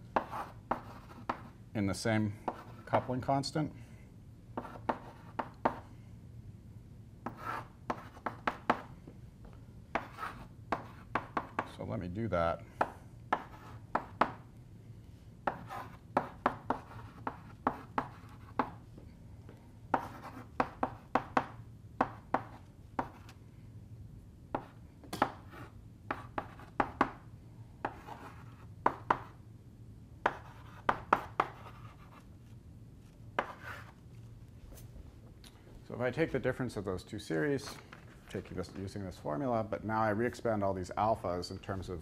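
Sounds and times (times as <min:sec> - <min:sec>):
chalk tapping on blackboard: 0:00.2 - 0:01.5, 0:04.6 - 0:05.8, 0:07.2 - 0:08.9, 0:09.9 - 0:11.7, 0:12.8 - 0:14.4, 0:15.4 - 0:18.8, 0:19.9 - 0:23.3, 0:24.5 - 0:27.2, 0:27.8 - 0:29.4, 0:30.2 - 0:32.2, 0:33.4 - 0:33.9
chalk scratching on blackboard: 0:00.2 - 0:01.6, 0:04.6 - 0:05.8, 0:07.3 - 0:08.8, 0:10.0 - 0:11.6, 0:13.3 - 0:14.1, 0:15.5 - 0:18.8, 0:19.9 - 0:21.3, 0:25.4 - 0:27.0, 0:27.8 - 0:29.3, 0:30.3 - 0:32.3, 0:33.4 - 0:34.0.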